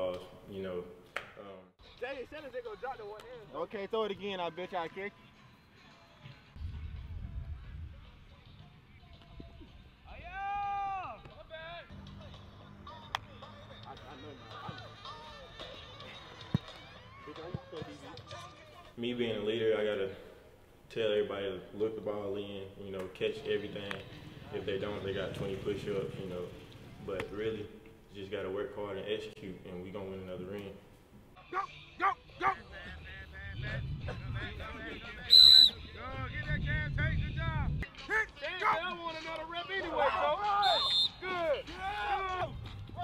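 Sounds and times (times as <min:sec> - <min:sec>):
background music: 0:00.3 - 0:43.0
person yelling: 0:10.1 - 0:11.2, 0:31.4 - 0:32.6, 0:39.8 - 0:42.5
people talking: 0:21.0 - 0:30.8, 0:31.6 - 0:42.5.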